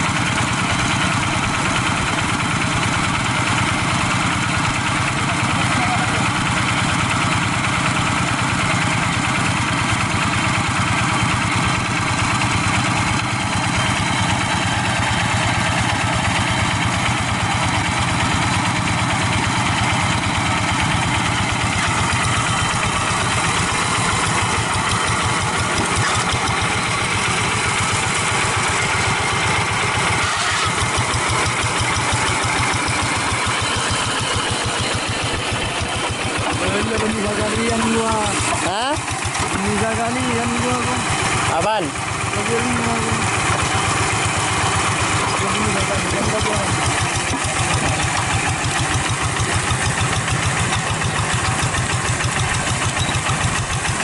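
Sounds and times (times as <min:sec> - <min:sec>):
diesel engine running steadily: 0:00.0 - 0:54.0.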